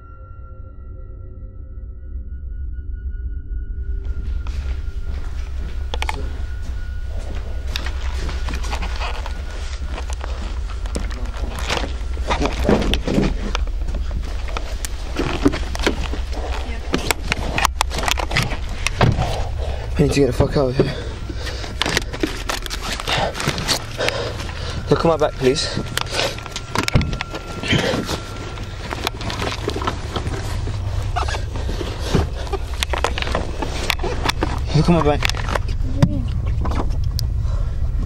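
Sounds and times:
low rumble on microphone: 0.0s - 38.0s.

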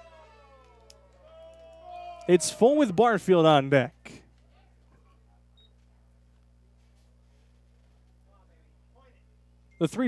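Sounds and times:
faint low hum: 0.0s - 10.0s
announcer speaking: 1.3s - 4.0s, 9.8s - 10.0s.

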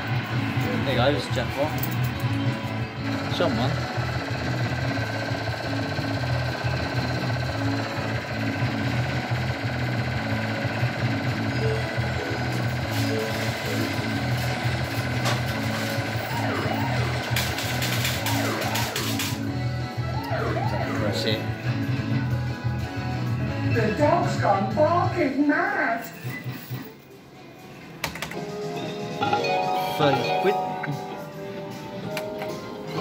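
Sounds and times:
fruit machine electronic music: 0.0s - 23.7s.

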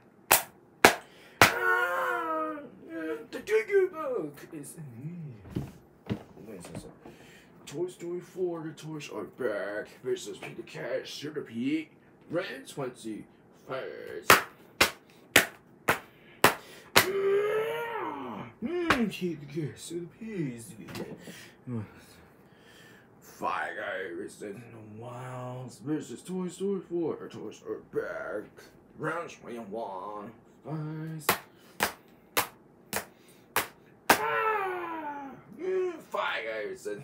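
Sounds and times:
toys smacking together: 0.3s - 1.7s, 14.3s - 17.2s, 31.3s - 34.4s.

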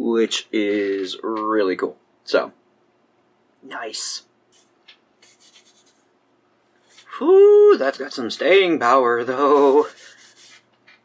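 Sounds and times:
tissue rubbing against skin: 4.6s - 6.1s, 9.4s - 10.7s.

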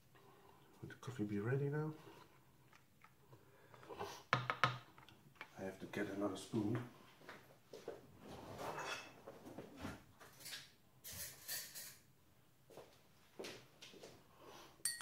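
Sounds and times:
cutlery and dishes clinking: 8.7s - 9.2s, 10.3s - 12.1s.

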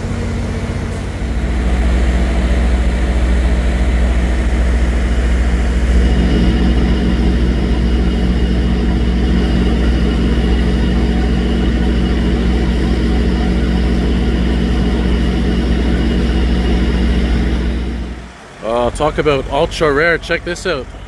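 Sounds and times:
diesel engine idling: 0.0s - 21.0s
faint high whine: 0.0s - 21.0s.

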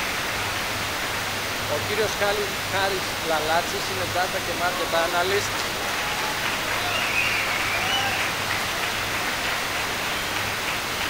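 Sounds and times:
audience applauding: 1.9s - 11.0s.

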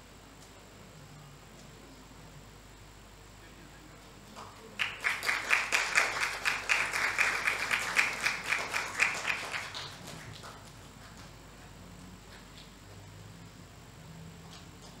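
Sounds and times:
group hand clapping: 4.3s - 11.4s.

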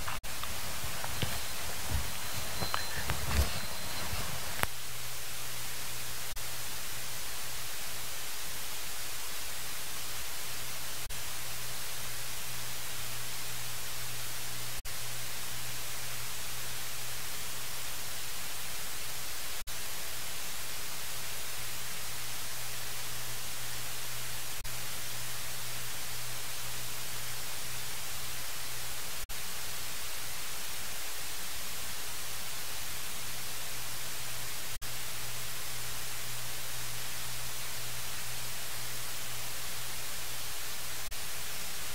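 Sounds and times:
low hum: 0.0s - 8.2s
electronic hiss and static: 0.0s - 41.9s.

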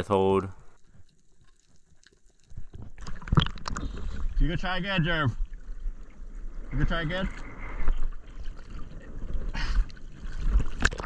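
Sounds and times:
water sloshing and splashing: 0.6s - 11.0s.

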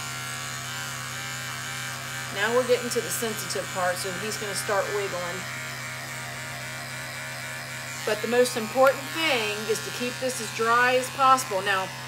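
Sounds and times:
electric pet clippers buzzing: 0.0s - 12.0s.

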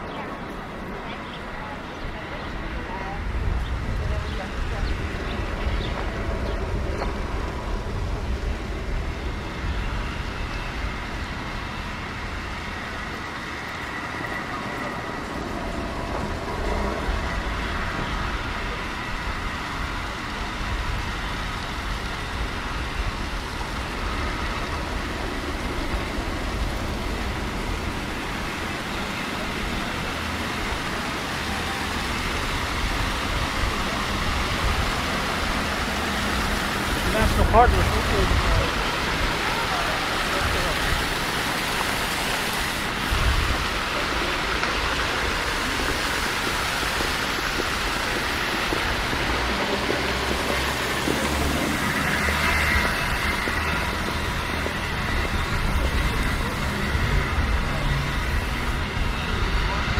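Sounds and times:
road traffic hum and rumble: 0.0s - 59.9s.

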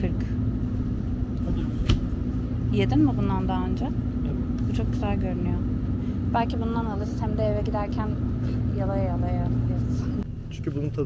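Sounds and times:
freezer hum and rumble: 0.0s - 11.0s.

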